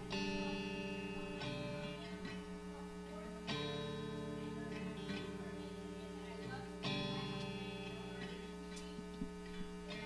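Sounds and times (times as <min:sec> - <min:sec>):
electric guitar chord strummed: 0:00.0 - 0:10.0
electrical hum from amplifiers: 0:00.0 - 0:10.0.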